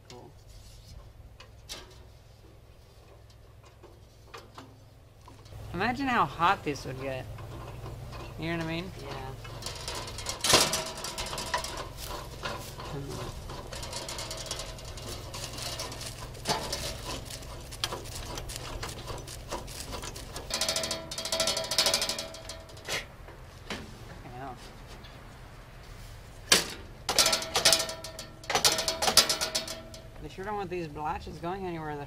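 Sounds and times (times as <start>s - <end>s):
ringing metallic clatter: 5.3s - 22.9s, 26.5s - 30.2s
sheet-metal flaps rattling and clanking: 7.2s - 23.9s, 26.5s - 30.1s.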